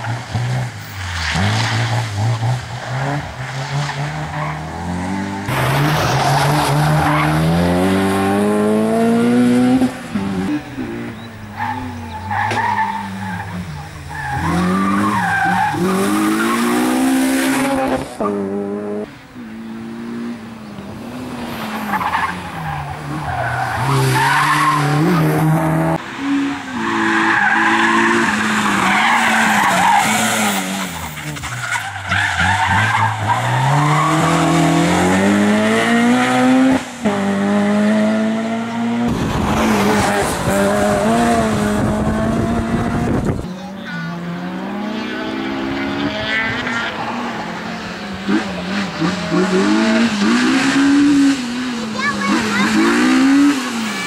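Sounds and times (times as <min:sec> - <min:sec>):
car engine revving: 0:00.0 - 0:54.0
tyres squealing and skidding: 0:00.8 - 0:08.2, 0:09.2 - 0:18.6, 0:21.4 - 0:36.1, 0:43.3 - 0:54.0.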